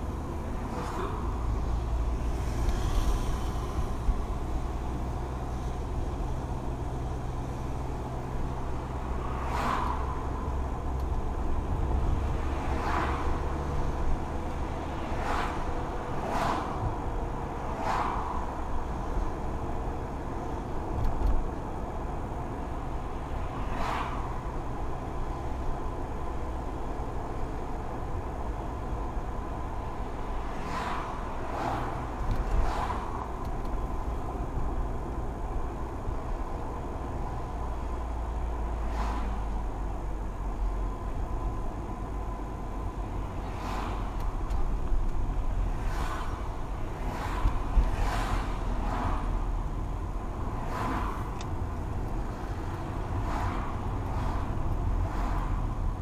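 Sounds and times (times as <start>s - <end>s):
car driving low rumble: 0.0s - 56.0s.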